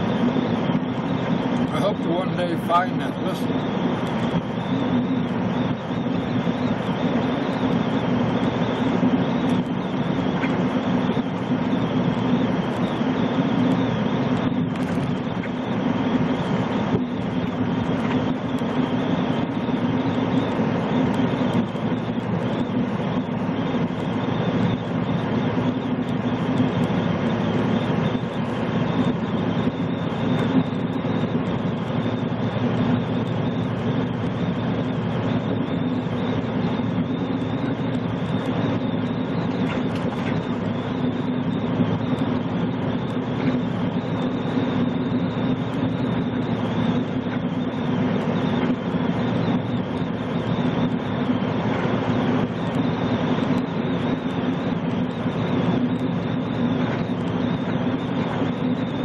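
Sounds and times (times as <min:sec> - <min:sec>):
diesel engine drone: 0:00.0 - 0:59.0.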